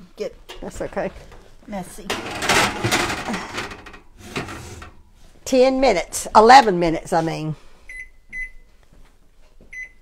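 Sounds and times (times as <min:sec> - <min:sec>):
metal sheet scraping on oven rack: 0:02.1 - 0:05.1.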